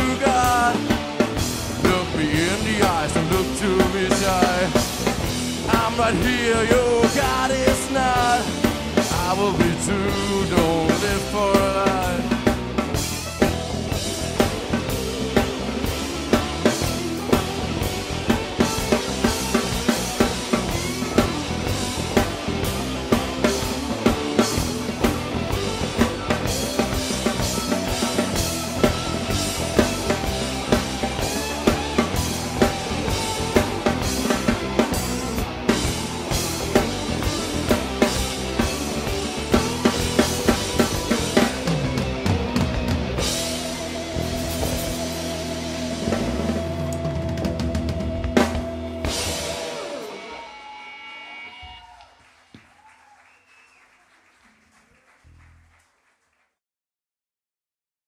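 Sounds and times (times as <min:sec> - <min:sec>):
drum kit hits and cymbals: 0:00.0 - 0:51.0
instrumental live band: 0:00.0 - 0:52.7.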